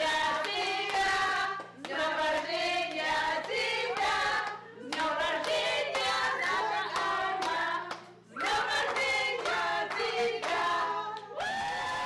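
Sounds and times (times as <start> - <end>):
voices singing together: 0.0 - 12.0
hand-clapping: 0.1 - 11.6.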